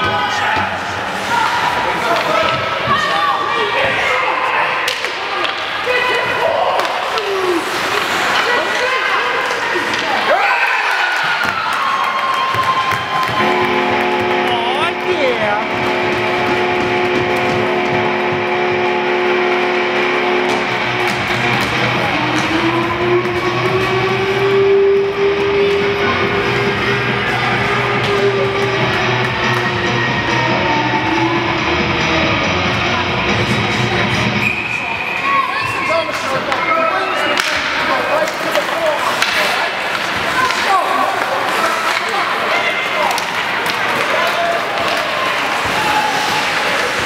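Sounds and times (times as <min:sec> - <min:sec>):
spectators talking: 0:00.0 - 0:47.0
music over public address system: 0:13.4 - 0:34.4.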